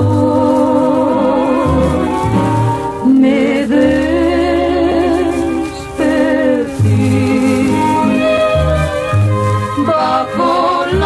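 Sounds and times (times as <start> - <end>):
guitar and bass band: 0.0 - 11.0
women singing in harmony: 0.0 - 11.0.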